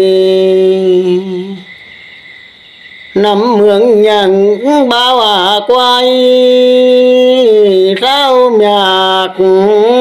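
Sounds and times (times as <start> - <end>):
high-pitched insect drone: 0.0 - 10.0.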